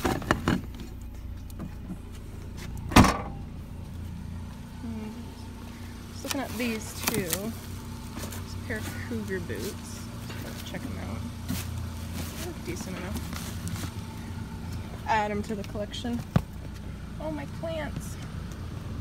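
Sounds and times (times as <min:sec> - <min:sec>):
low steady hum: 0:00.0 - 0:19.0
car hatch slammed shut: 0:02.9 - 0:03.4.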